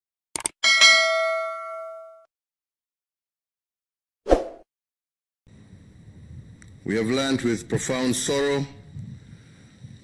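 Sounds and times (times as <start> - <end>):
metallic notification bell ding: 0.6 - 2.3.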